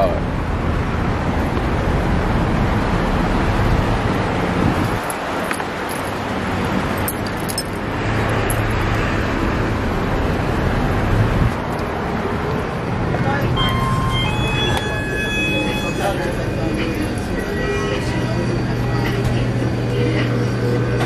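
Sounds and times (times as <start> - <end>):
low rumble of traffic: 0.0 - 21.0.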